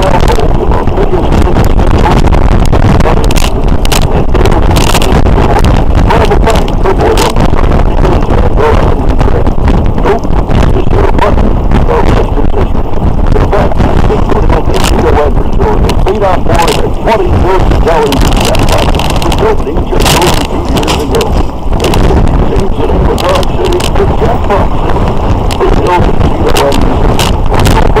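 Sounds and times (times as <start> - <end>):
road noise: 0.0 - 28.0
wind buffeting microphone: 0.0 - 28.0.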